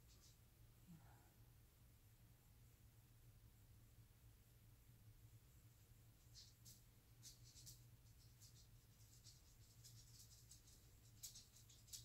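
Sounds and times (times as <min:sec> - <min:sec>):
faint ticks and rustles: 0:00.0 - 0:01.3, 0:05.6 - 0:12.0.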